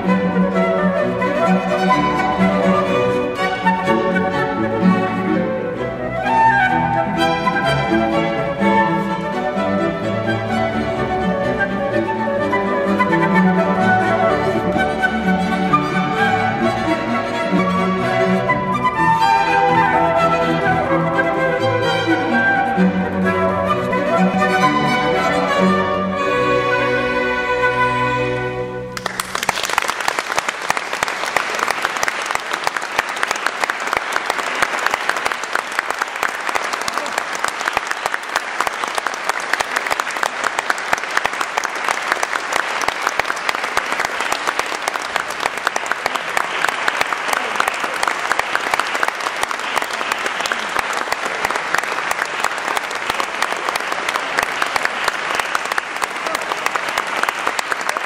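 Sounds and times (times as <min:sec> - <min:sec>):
audience applauding: 0:28.9 - 0:58.0.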